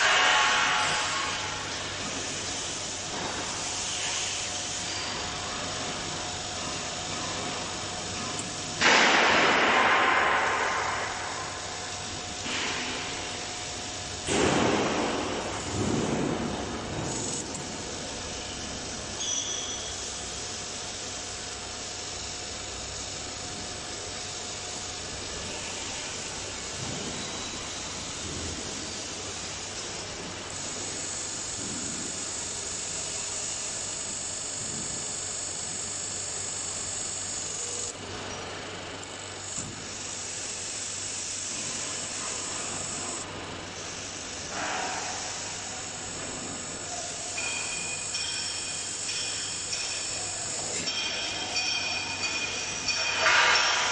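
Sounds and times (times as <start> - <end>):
loud machine clatter: 0.0 - 19.2, 44.1 - 53.9
high thin whine: 0.0 - 38.0, 39.1 - 53.9
machine hum and hiss: 0.0 - 53.9.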